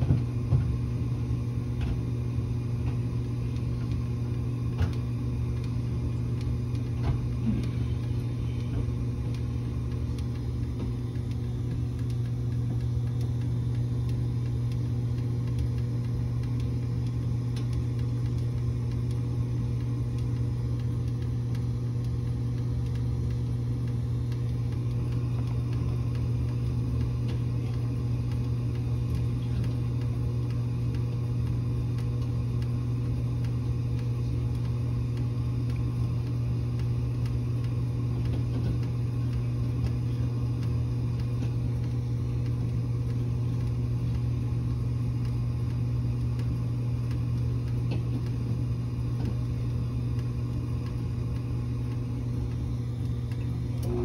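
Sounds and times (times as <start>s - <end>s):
gas furnace humming: 0.0s - 54.0s.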